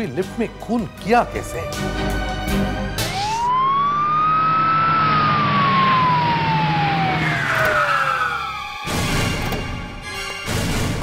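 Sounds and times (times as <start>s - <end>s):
police siren wailing: 2.9s - 10.0s.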